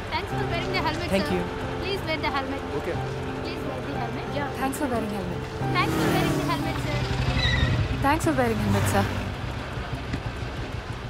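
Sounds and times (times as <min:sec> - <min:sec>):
motorbike and vehicle engines: 0:00.0 - 0:11.0.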